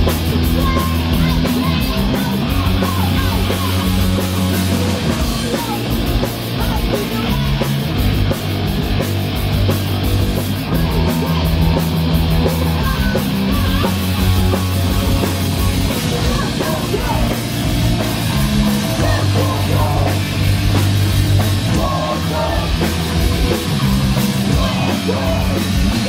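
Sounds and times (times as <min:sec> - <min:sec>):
bass chords: 0:00.0 - 0:26.0
distorted electric guitar: 0:00.0 - 0:26.0
drumming: 0:00.0 - 0:26.0.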